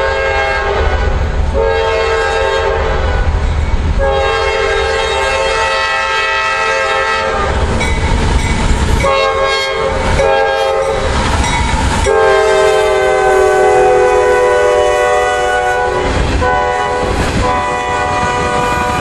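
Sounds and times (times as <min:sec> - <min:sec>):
locomotive air horn blasts: 0:00.0 - 0:03.3, 0:04.0 - 0:07.6, 0:09.0 - 0:11.1, 0:12.0 - 0:19.0
locomotive engine rumble: 0:01.0 - 0:19.0
train wheels clattering on rails: 0:07.5 - 0:14.0, 0:15.0 - 0:19.0.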